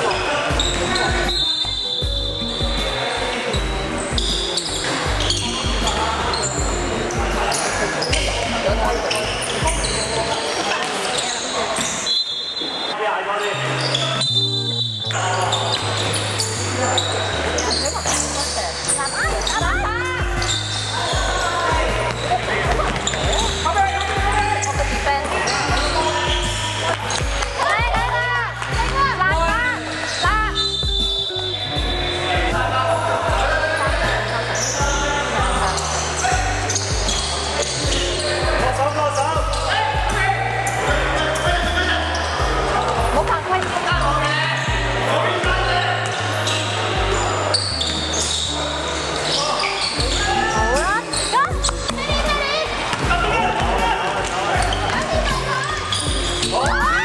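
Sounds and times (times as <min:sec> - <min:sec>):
music playing: 0:00.0 - 0:11.9, 0:12.9 - 0:57.0
sneakers squeaking: 0:00.0 - 0:57.0
players calling out: 0:13.5 - 0:57.0.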